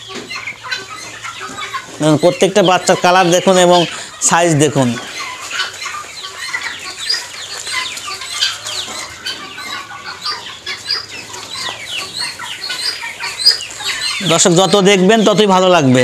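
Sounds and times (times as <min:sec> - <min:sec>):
chicks peeping: 0:00.0 - 0:16.0.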